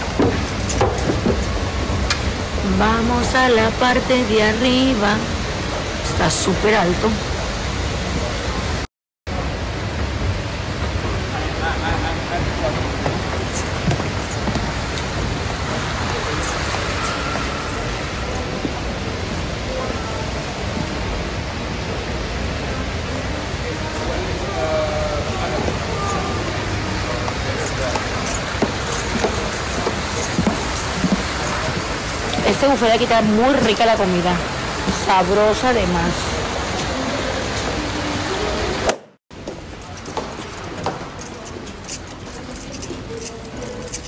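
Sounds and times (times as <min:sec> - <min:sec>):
fountain water splashing: 0:00.0 - 0:38.9.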